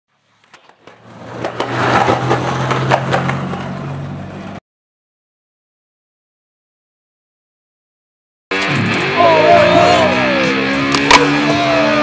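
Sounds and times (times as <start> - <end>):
skateboard rolling on concrete: 0.1 - 4.6
skateboard wheels clacking: 0.3 - 4.5.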